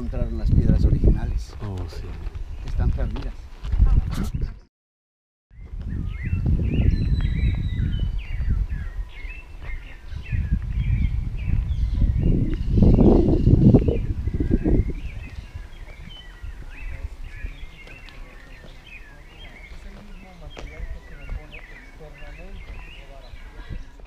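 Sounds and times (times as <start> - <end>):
birds chirping: 0.0 - 3.5, 5.5 - 24.0
low rumble on microphone: 5.6 - 24.0.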